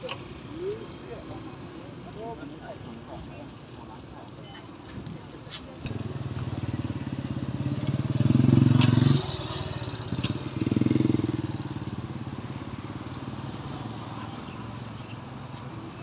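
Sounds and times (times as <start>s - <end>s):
small motorcycle engine revving: 5.9s - 11.6s.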